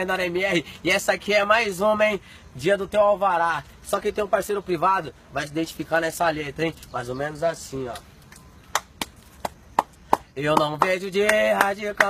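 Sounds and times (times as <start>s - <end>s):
hands clapping sharp claps: 8.3s - 12.0s.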